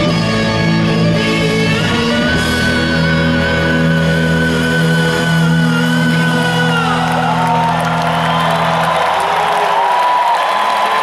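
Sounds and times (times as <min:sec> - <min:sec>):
electric guitars sustained chord: 0:00.0 - 0:09.0.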